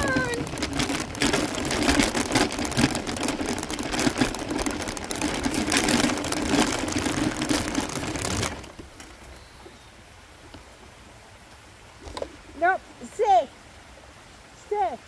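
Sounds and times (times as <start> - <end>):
wheels rolling on gravel: 0.0 - 9.9.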